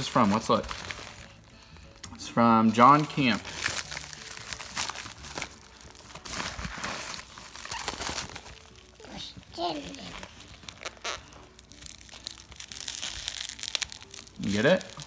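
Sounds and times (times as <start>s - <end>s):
plastic wrapping crinkling: 0.0s - 15.0s
padded mailer tearing: 3.5s - 9.0s.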